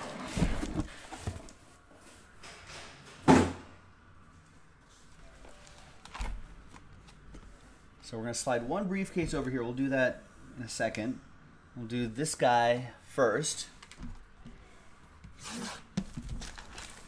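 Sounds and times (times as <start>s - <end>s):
cardboard case rustling: 0.0s - 1.6s.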